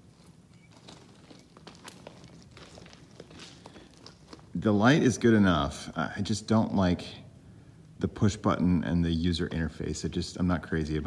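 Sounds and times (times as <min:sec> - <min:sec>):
footsteps on gravel ballast: 0:00.0 - 0:05.3.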